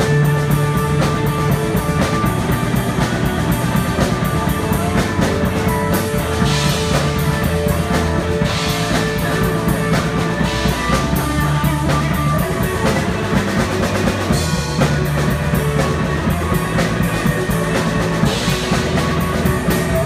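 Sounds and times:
drum kit beat: 0.0s - 20.0s
electric guitars: 0.0s - 20.0s.

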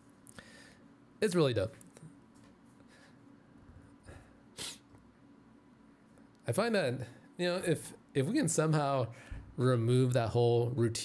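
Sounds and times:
sharp nasal sniff: 4.5s - 4.9s.

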